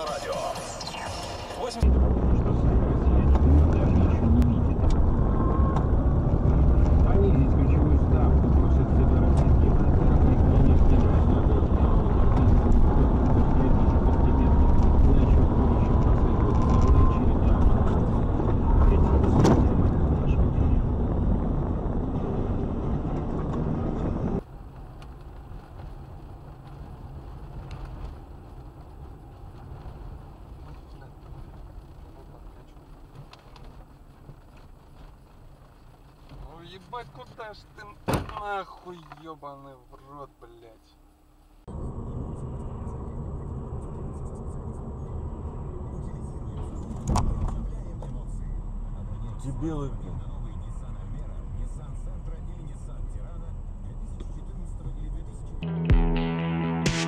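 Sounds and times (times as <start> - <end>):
car engine and road noise rumble: 0.0 - 57.0.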